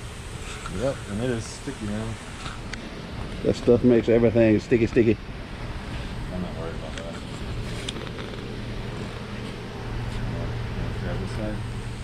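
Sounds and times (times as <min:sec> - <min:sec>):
background hiss: 0:00.0 - 0:12.0
steady low hum: 0:00.0 - 0:12.0.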